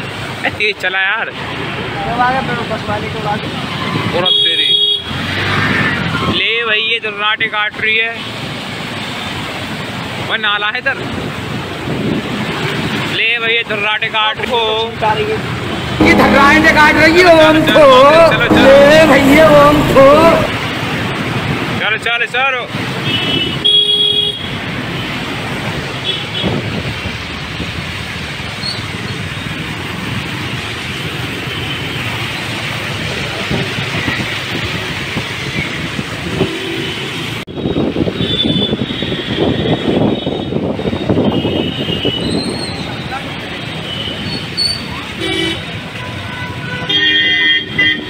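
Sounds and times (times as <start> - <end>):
wind: 0.0 - 16.7, 17.4 - 48.0
street traffic: 0.0 - 48.0.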